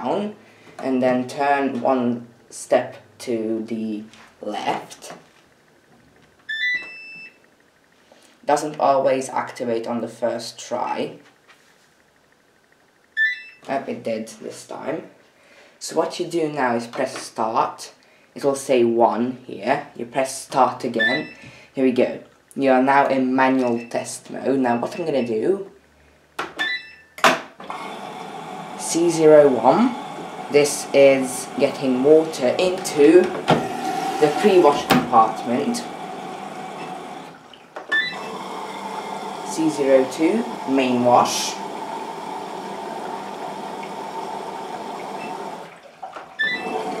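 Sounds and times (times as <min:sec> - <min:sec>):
washing machine beeping chime: 0:06.5 - 0:07.4, 0:13.2 - 0:13.6, 0:21.0 - 0:21.4, 0:26.6 - 0:27.2, 0:37.9 - 0:38.4, 0:45.0 - 0:45.6, 0:46.4 - 0:46.9
water rushing into machine: 0:27.7 - 0:47.0
washing machine clunk: 0:32.7 - 0:35.5.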